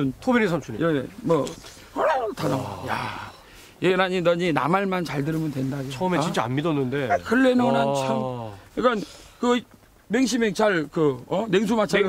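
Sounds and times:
man's rough drawn-out growl: 2.0 - 3.4.

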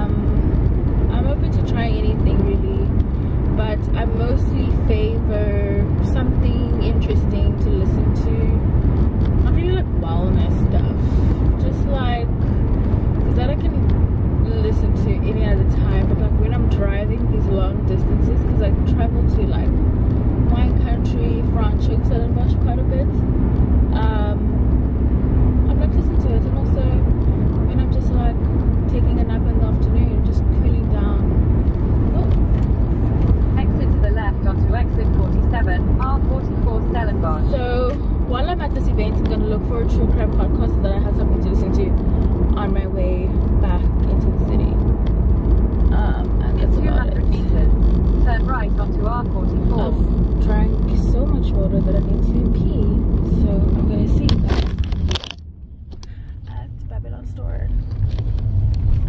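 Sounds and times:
woman talking: 0.0 - 8.7, 9.4 - 12.3, 13.3 - 19.8, 20.5 - 23.2, 23.9 - 24.6, 25.7 - 31.4, 32.0 - 32.6, 33.5 - 44.8, 45.9 - 55.2, 56.1 - 57.9
car cabin road rumble: 0.0 - 59.0.

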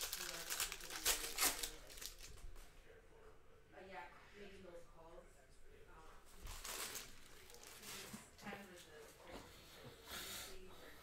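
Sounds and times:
faint murmur of speech: 0.0 - 11.0.

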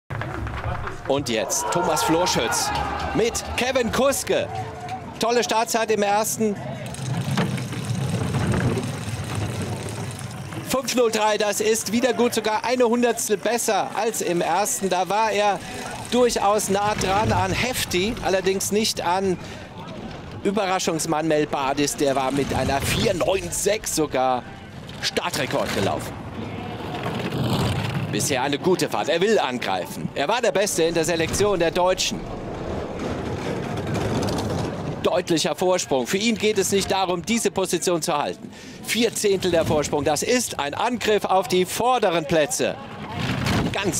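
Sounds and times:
bobsleigh runners rumbling on ice: 0.1 - 37.1, 39.1 - 43.9.

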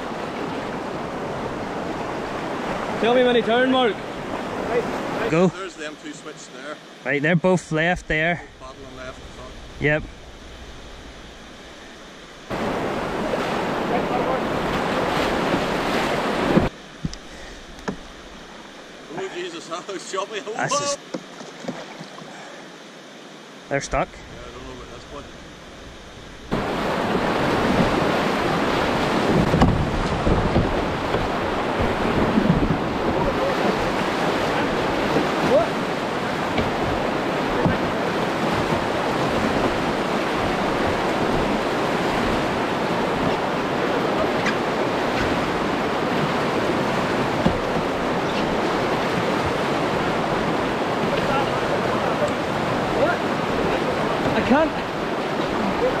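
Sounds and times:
whitewater rushing: 0.0 - 56.0
wind buffeting microphone: 25.3 - 51.2.

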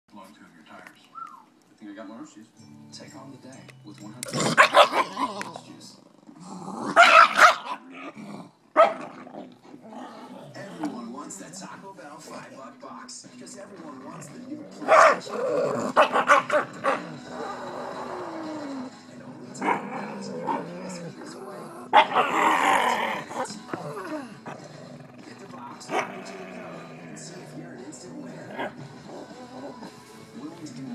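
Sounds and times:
dog growling and barking: 4.2 - 11.1, 14.0 - 27.2, 28.4 - 30.0.

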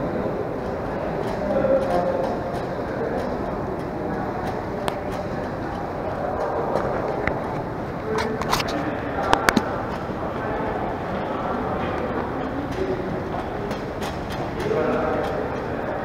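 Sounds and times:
murmur of voices: 0.0 - 16.0
trolley rolling on tiled floor: 0.2 - 16.0.

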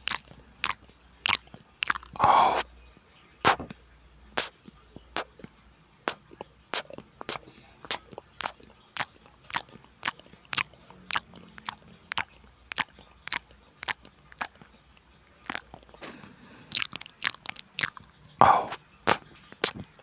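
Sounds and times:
crunchy chewing: 0.0 - 2.7, 3.4 - 3.8, 4.4 - 5.5, 6.1 - 20.0
cucumber bite crunch: 0.0 - 2.7, 3.5 - 3.8, 4.4 - 5.5, 6.1 - 14.7, 15.3 - 20.0.

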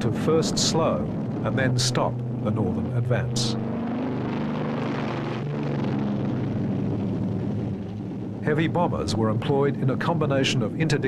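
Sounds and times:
aircraft engines droning: 0.0 - 11.0.

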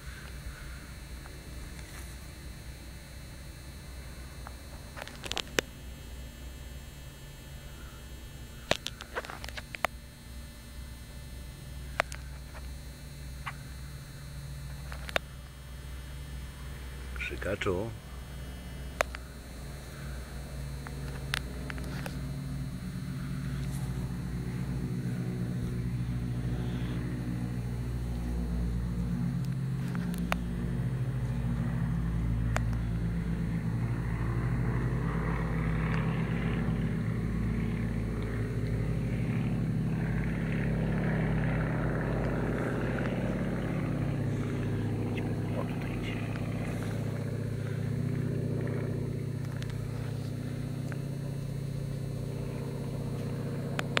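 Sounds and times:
low engine hum: 0.0 - 54.0.

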